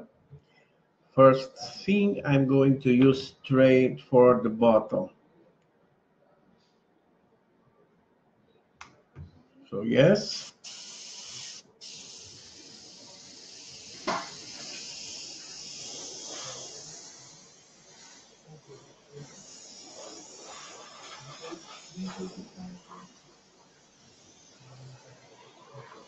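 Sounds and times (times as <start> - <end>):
airbrush spraying hiss: 10.1 - 26.0.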